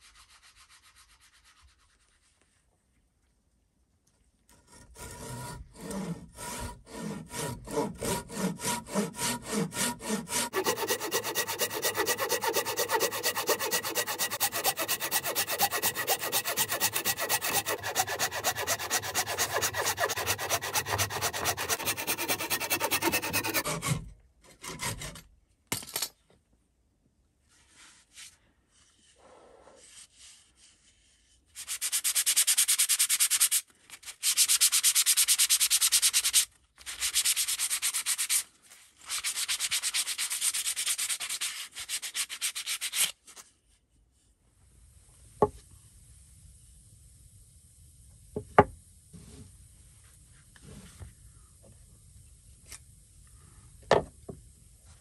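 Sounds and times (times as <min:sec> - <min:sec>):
hand saw cutting log: 0:04.5 - 0:25.2
sandpaper rubbing wood: 0:05.8 - 0:23.9, 0:31.6 - 0:43.2.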